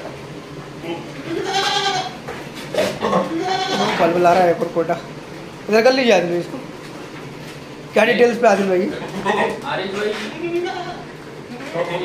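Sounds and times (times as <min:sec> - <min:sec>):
goat bleating: 0:01.2 - 0:02.2, 0:02.9 - 0:04.2, 0:09.0 - 0:09.7, 0:10.3 - 0:12.0.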